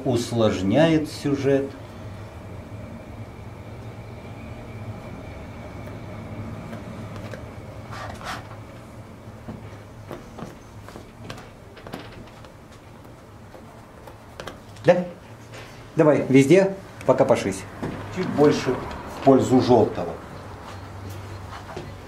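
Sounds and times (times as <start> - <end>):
low room hum: 0.0 - 22.0
short scrapes: 7.9 - 8.6.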